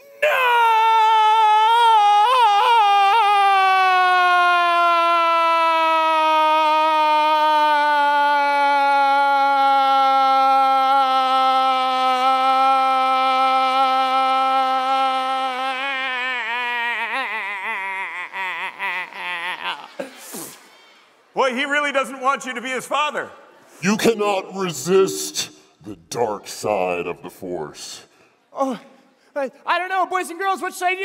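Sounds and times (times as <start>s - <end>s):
man shouting: 0.0s - 20.0s.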